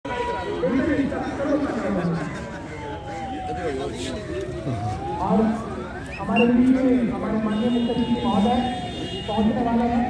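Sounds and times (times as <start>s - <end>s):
distant siren wailing: 2.5s - 7.2s.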